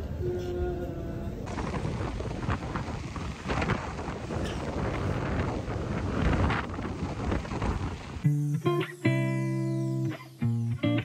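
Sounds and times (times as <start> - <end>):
wind buffeting microphone: 1.2 - 8.2.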